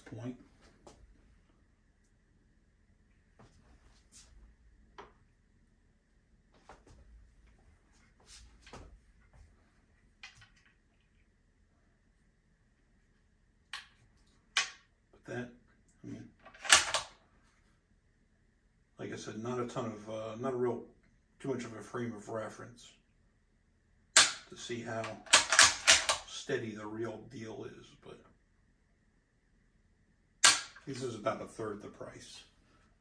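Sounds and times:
sharp click of rifle: 24.2s - 24.5s, 30.4s - 30.8s.

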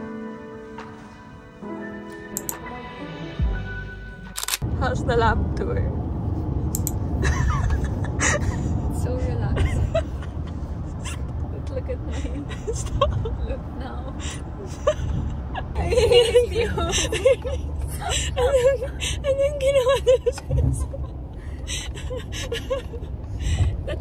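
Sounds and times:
background music: 0.0s - 4.6s
car cabin road noise: 4.4s - 24.0s
woman talking: 4.7s - 6.0s, 8.9s - 9.9s, 11.5s - 12.6s, 13.3s - 14.3s, 15.7s - 17.2s, 18.4s - 20.8s
woman laughing: 7.2s - 11.2s, 12.0s - 21.1s, 21.7s - 24.0s.

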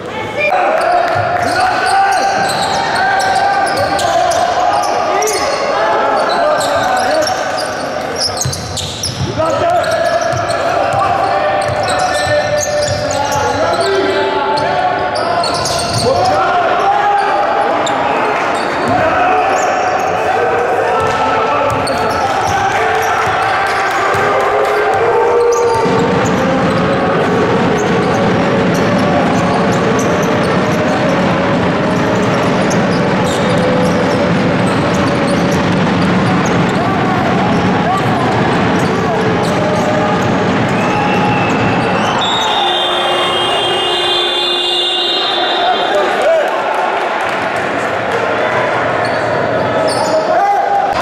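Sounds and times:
basketball bouncing on court: 8.2s - 13.6s, 21.0s - 41.9s
people shouting: 36.5s - 46.7s.

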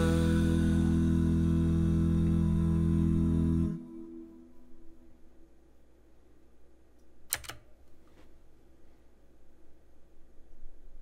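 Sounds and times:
faint room hum: 0.0s - 11.0s
sharp computer clicks: 7.3s - 7.7s.

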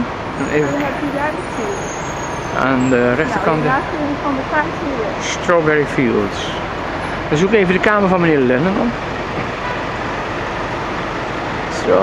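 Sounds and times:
street traffic noise: 0.0s - 12.0s.

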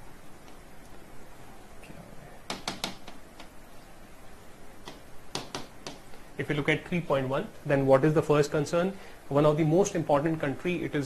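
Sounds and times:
stylus tapping on glass: 2.5s - 3.2s, 4.9s - 6.0s.

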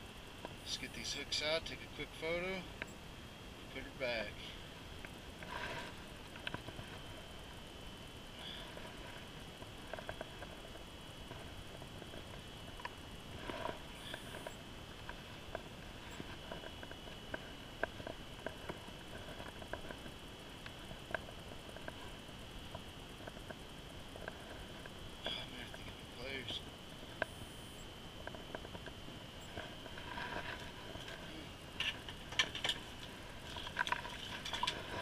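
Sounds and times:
faint high whine: 0.0s - 35.0s.

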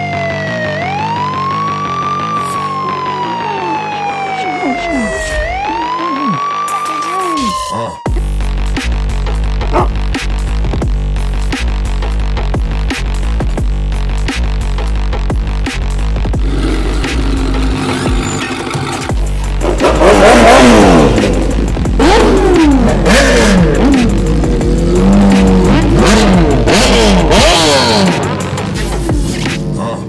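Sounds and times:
bass-heavy electronic music: 0.0s - 30.0s
motorcycle engines revving: 16.2s - 30.0s.

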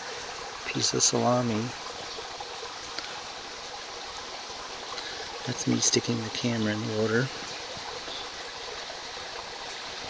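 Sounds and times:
creek water trickling: 0.0s - 10.0s.

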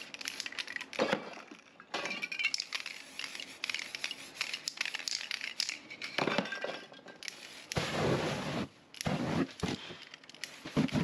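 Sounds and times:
spray paint fire whooshing: 7.3s - 9.8s.

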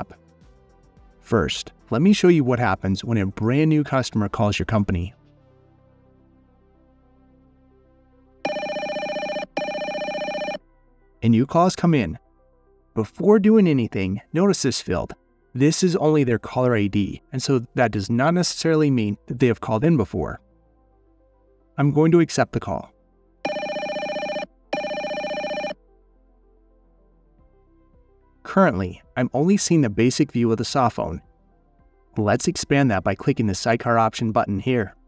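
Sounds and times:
trilling electronic telephone ring: 8.4s - 10.6s, 23.4s - 25.8s.

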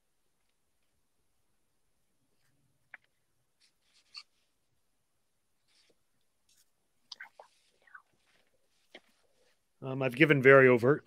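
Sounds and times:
faint whispers: 5.7s - 9.6s.

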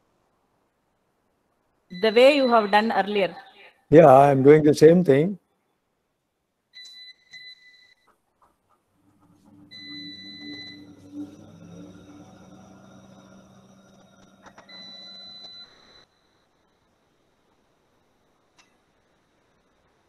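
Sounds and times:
faint high electronic tone: 1.9s - 3.6s, 9.0s - 18.4s
low hum: 8.9s - 18.3s.

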